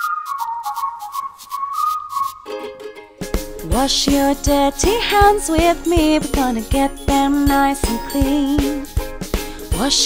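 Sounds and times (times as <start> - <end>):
whistled tune: 0.0 - 2.8.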